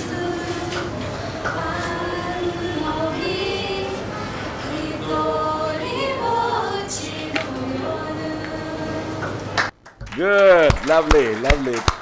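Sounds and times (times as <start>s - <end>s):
group singing unaccompanied: 0.0s - 9.6s.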